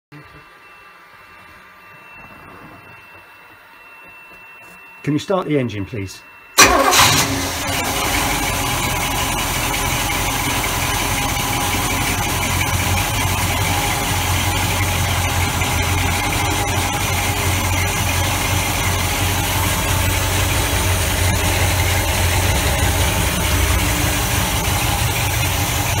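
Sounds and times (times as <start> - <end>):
boat engine idling: 6.6 - 26.0.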